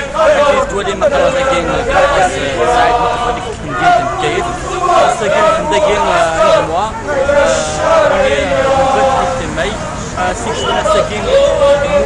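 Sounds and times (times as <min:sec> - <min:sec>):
protesters chanting: 0:00.0 - 0:12.0.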